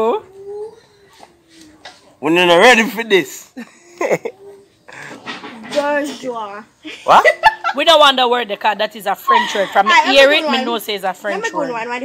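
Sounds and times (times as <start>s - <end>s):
person laughing: 3.6s - 5.1s.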